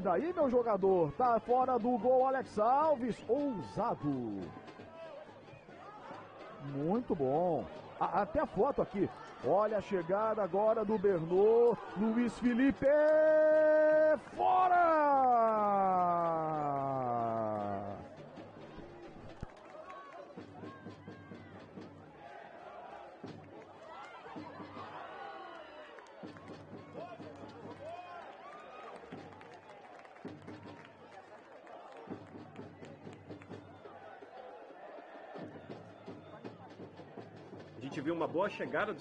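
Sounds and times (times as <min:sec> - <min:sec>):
sparse crowd: 0:00.0 - 0:39.0
distant players shouting: 0:00.1 - 0:18.3.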